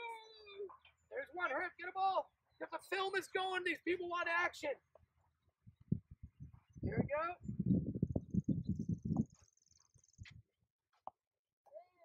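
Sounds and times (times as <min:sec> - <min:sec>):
faint low thumps: 0:05.6 - 0:09.4.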